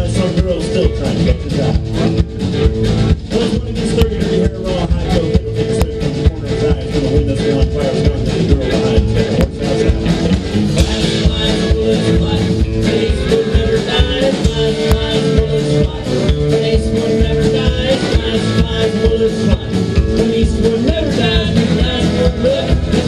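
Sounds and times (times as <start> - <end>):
electric guitar: 0.0 - 23.0
steady drum beat: 0.0 - 23.0
upright bass: 0.0 - 23.0.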